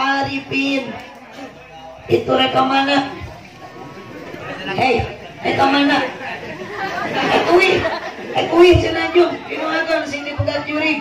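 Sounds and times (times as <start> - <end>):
chatter: 0.0 - 11.0.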